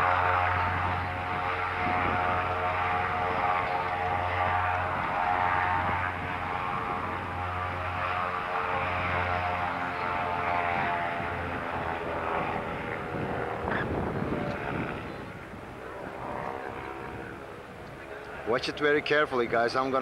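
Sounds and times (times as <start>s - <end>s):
airship propeller engines droning: 0.0s - 20.0s.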